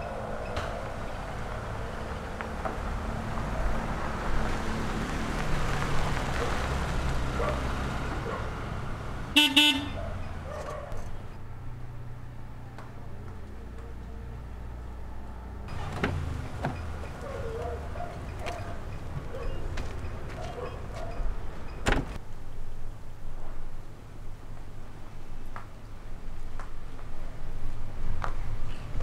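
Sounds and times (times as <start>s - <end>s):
car horn toots: 9.3s - 10.1s
car door shutting: 15.7s - 22.2s.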